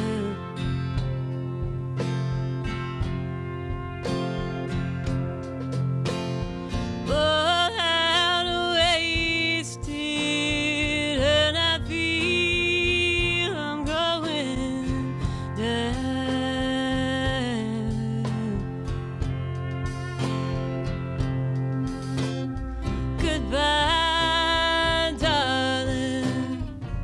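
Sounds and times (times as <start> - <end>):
drums: 0.0 - 27.0
electric bass: 0.0 - 27.0
pedal steel guitar sliding notes: 0.0 - 27.0
strummed acoustic guitar: 0.0 - 27.0.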